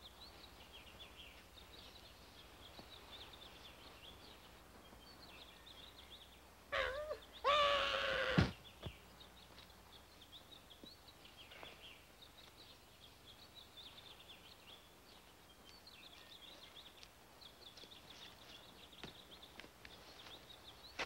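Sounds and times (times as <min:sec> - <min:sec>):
faint bird chirping: 0:00.0 - 0:21.0
loud pitched cry: 0:06.7 - 0:08.5.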